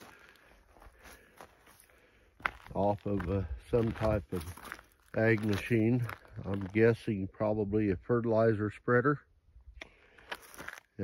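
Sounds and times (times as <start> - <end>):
footsteps on dry dirt: 0.0 - 7.5, 9.8 - 11.0.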